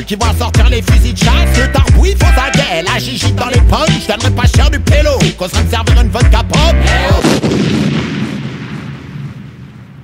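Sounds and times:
rapping over a beat: 0:00.0 - 0:07.3.

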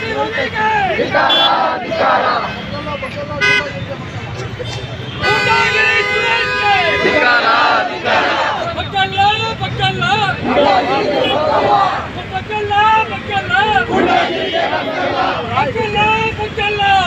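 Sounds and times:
crowd shouting slogans: 0:00.0 - 0:02.8, 0:05.4 - 0:09.1, 0:09.7 - 0:17.0
vehicle horn blast: 0:05.1 - 0:07.2.

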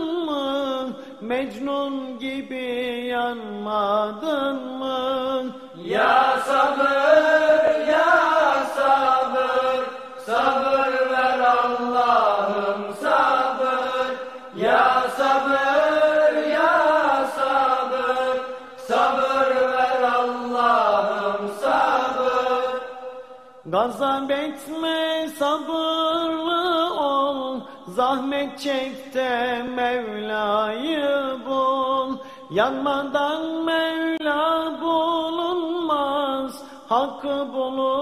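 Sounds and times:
voices singing a hymn unaccompanied: 0:03.8 - 0:27.1.

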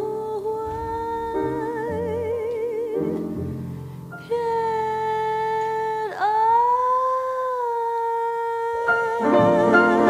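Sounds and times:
piano trio: 0:00.0 - 0:10.0
woman singing jazz: 0:00.0 - 0:10.0.

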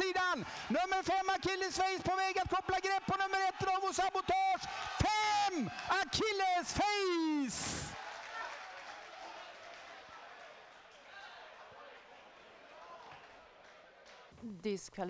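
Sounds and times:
man's excited race commentary: 0:00.0 - 0:08.0.

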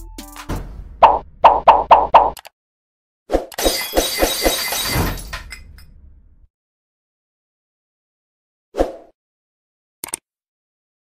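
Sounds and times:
crash with rattling hits: 0:03.6 - 0:06.1.

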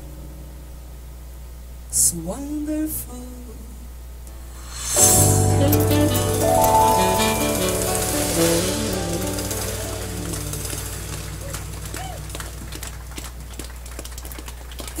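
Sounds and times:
bossa nova jazz band: 0:04.7 - 0:15.0
steady low hum: 0:08.3 - 0:15.0.

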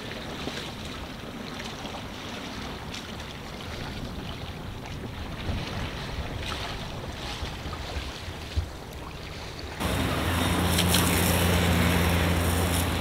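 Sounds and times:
water rushing past hull: 0:00.0 - 0:13.0
wind buffeting microphone: 0:03.6 - 0:08.8
low hum: 0:09.8 - 0:13.0.

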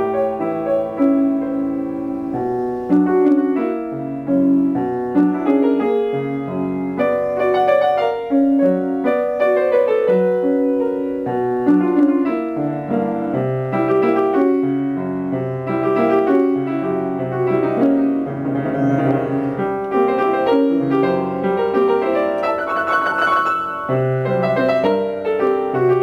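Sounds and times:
solo piano music: 0:00.0 - 0:26.0.

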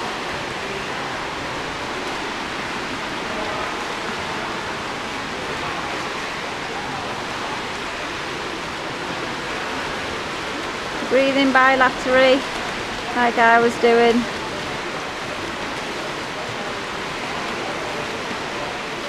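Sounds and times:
faint voices: 0:00.0 - 0:19.0
swimmers splashing in indoor pool: 0:00.0 - 0:19.0.

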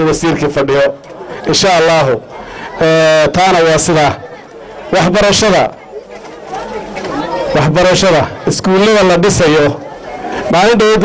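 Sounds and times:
man speaking into a microphone: 0:00.0 - 0:04.3, 0:04.9 - 0:05.8, 0:07.5 - 0:09.8, 0:10.4 - 0:11.0.

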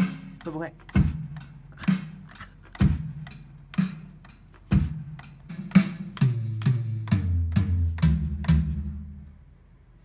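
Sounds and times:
kick drum: 0:00.0 - 0:01.4, 0:02.7 - 0:03.3, 0:04.7 - 0:08.8
hi-hat ticks: 0:00.0 - 0:08.1
snare drum: 0:00.0 - 0:09.0.

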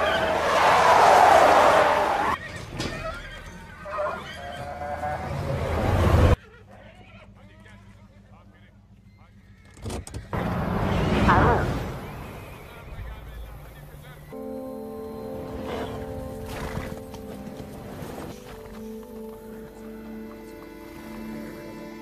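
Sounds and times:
tyres screeching: 0:00.0 - 0:06.0
vehicle and road noise: 0:03.7 - 0:22.0.

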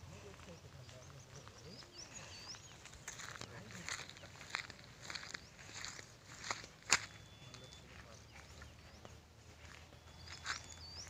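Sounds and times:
footsteps on dry grass and stones: 0:00.0 - 0:11.0.

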